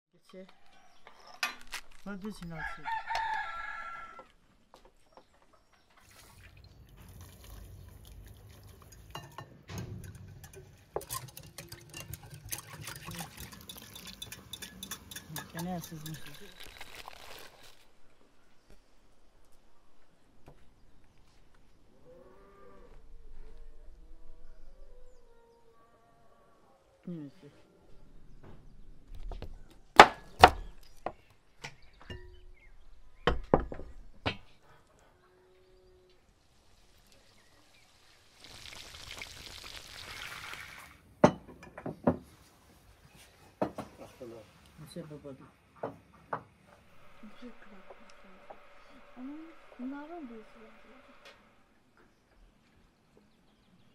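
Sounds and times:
liquid sloshing: 6.0s - 15.0s
fish sizzling in hot oil: 37.6s - 40.9s.

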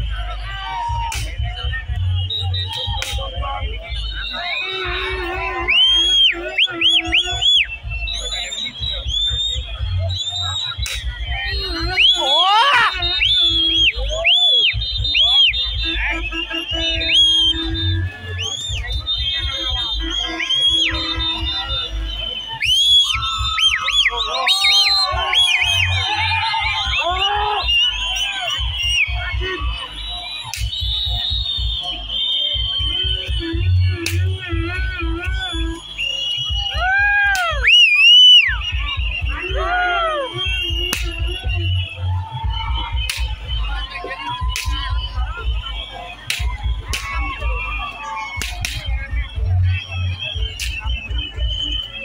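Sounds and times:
heavy drum beats: 0.0s - 51.8s
crowd voices and shouts: 0.0s - 52.0s.

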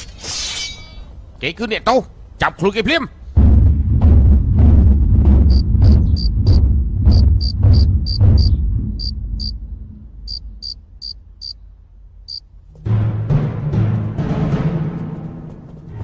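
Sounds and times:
war drum booming: 3.4s - 11.1s
cricket chirping: 5.5s - 9.6s, 10.3s - 11.6s.

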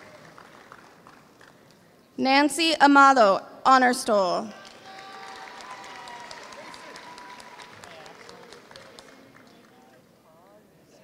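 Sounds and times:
audience clapping: 0.0s - 1.8s, 4.5s - 10.1s.

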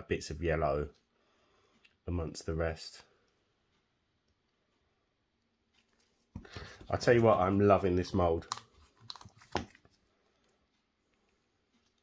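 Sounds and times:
man speaking: 0.0s - 1.0s, 2.0s - 3.2s, 6.8s - 8.6s.

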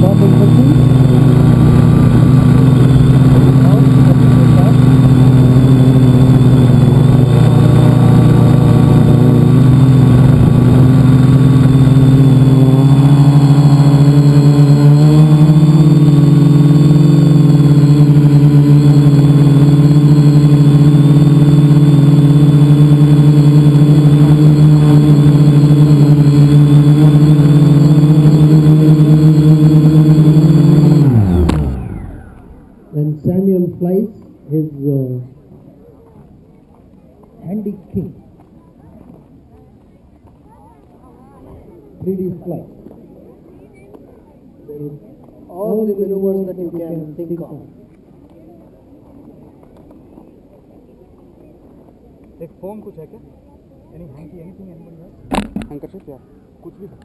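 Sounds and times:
drone motors and propellers buzzing: 0.0s - 33.6s, 55.3s - 56.0s.

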